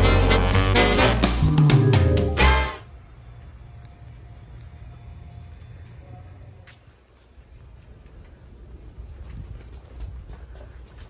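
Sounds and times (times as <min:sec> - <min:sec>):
footsteps on pavement: 0:03.0 - 0:11.0.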